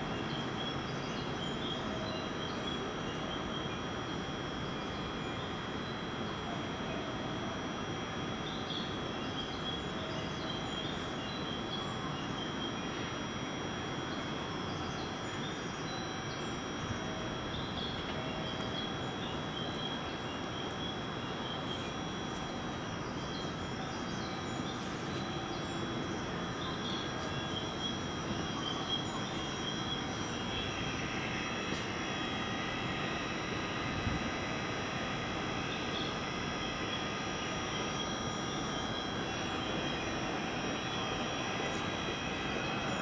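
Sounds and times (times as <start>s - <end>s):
electric train humming: 11.9s - 43.0s
high whining tones: 12.0s - 43.0s.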